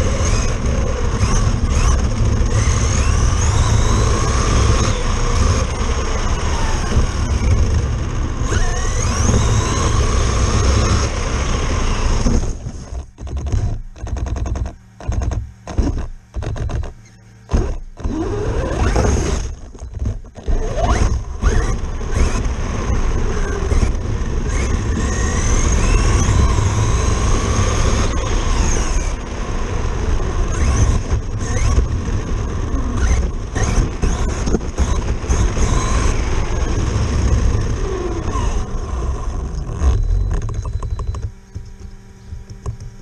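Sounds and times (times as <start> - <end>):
wind rumble on microphone: 0.0 - 16.9, 17.5 - 43.0
electric motor whining: 0.0 - 43.0.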